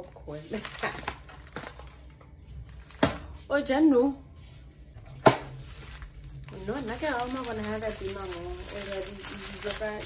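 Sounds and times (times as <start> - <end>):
packaging crinkling: 0.5 - 3.0, 5.5 - 10.0.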